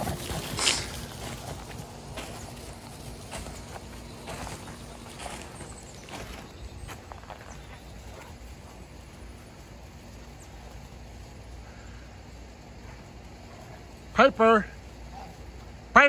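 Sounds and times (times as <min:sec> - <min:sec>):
footsteps crunching in snow: 0:00.0 - 0:11.5
low steady rumble: 0:00.0 - 0:16.0.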